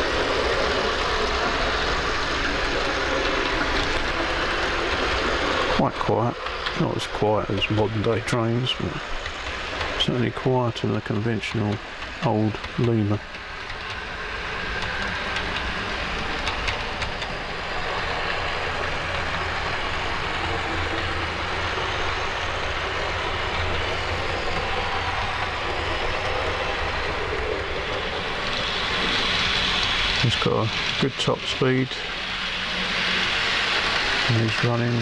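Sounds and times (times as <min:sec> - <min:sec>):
model train motor hum: 0:00.0 - 0:35.0
wheels rumbling on rails: 0:00.0 - 0:35.0.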